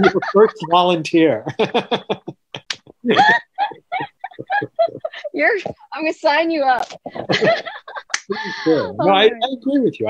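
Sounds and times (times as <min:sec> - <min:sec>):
man laughing: 0:00.0 - 0:05.9, 0:06.8 - 0:09.3.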